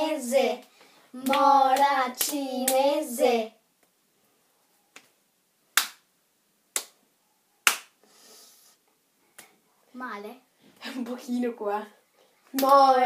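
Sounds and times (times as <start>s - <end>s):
hand slapping wrist: 4.9s - 5.1s, 5.8s - 6.0s, 6.7s - 7.0s, 7.6s - 8.0s.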